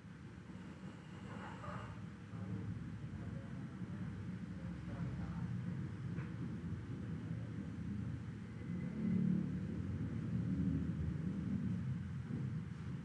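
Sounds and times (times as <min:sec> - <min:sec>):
low rumble of background noise: 0:00.0 - 0:13.0.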